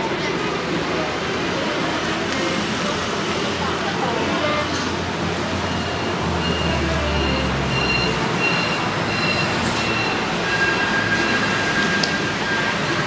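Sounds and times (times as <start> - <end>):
busy indoor concourse background noise: 0.0 - 13.0.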